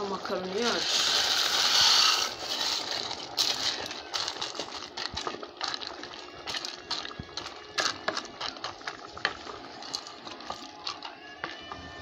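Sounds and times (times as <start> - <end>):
wooden spoon against metal pot: 0.0 - 12.0
dry pasta sliding into a pot: 0.6 - 4.7.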